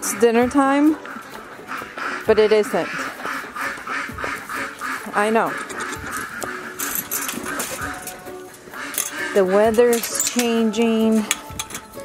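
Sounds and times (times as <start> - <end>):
goats bleating: 1.8 - 9.6.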